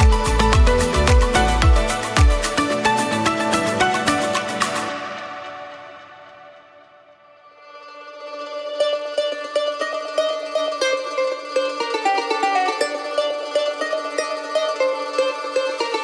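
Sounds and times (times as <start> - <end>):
plucked string instrumental tune: 0.0 - 16.0.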